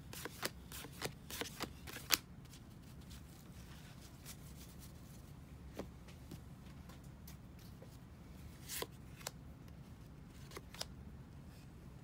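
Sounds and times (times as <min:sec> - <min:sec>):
cards rustling: 0:00.0 - 0:05.0
cards flicking and tapping: 0:00.1 - 0:02.2.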